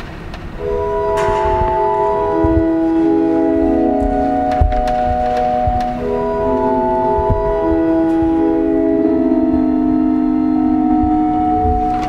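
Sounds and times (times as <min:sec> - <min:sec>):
organ playing slow chords: 0:00.5 - 0:12.0.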